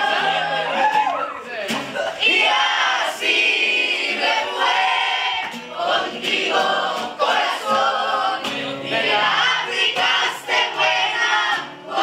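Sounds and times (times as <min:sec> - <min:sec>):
group singing: 0:00.0 - 0:01.0, 0:01.9 - 0:12.0
strummed acoustic guitar: 0:00.0 - 0:12.0.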